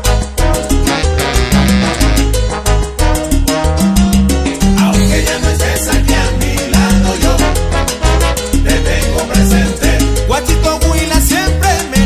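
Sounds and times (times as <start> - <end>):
salsa music: 0.0 - 12.0.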